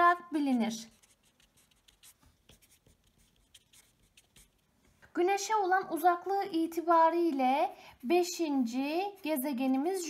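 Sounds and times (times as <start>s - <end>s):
felt-tip pen scratching paper: 0.1s - 4.7s.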